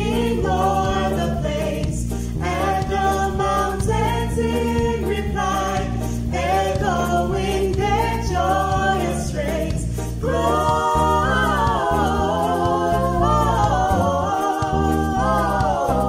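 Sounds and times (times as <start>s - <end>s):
group singing carol in harmony: 0.0s - 16.0s
low bass line: 0.0s - 16.0s.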